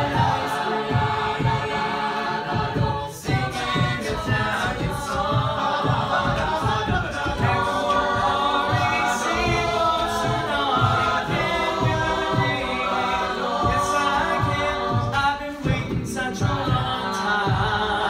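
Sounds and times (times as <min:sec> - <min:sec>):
a cappella group singing: 0:00.0 - 0:18.0
vocal beat: 0:00.0 - 0:18.0.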